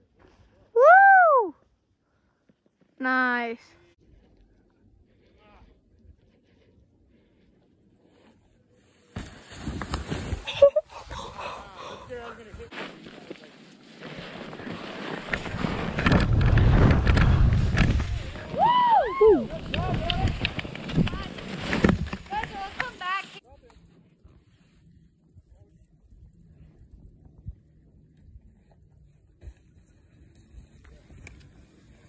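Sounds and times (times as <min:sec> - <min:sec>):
whooping shouts: 0:00.8 - 0:01.6, 0:18.5 - 0:19.6
skis scraping over snow: 0:08.0 - 0:18.6, 0:19.4 - 0:26.6, 0:28.5 - 0:32.0
wind buffeting microphone: 0:15.5 - 0:22.1.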